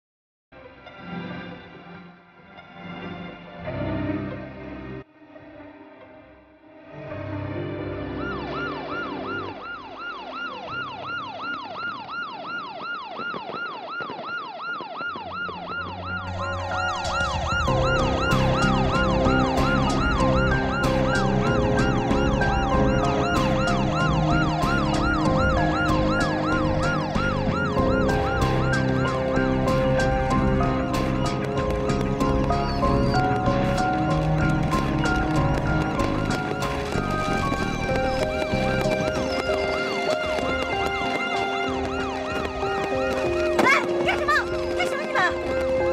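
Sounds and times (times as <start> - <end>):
background music: 0.6 - 12.7, 15.3 - 45.9
police siren yelping: 8.2 - 45.9.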